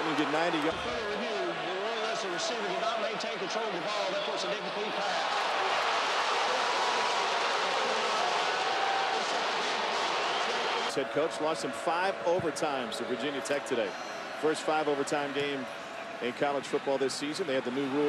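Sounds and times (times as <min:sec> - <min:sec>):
stadium crowd noise: 0:00.0 - 0:18.0.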